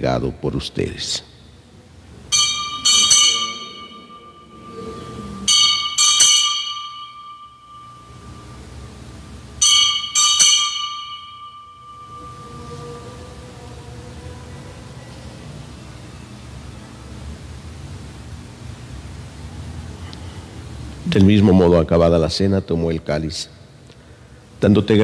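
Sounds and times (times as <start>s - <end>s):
altar bells ringing: 2.2s - 14.8s.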